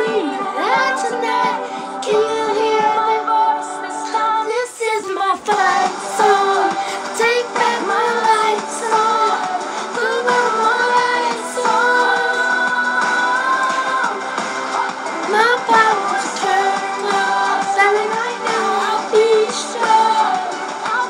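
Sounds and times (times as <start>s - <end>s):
pop song with female vocal: 0.0s - 21.0s.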